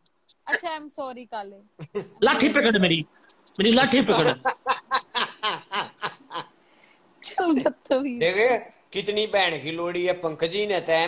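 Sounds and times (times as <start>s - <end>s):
man laughing: 1.8s - 2.6s, 3.6s - 6.5s.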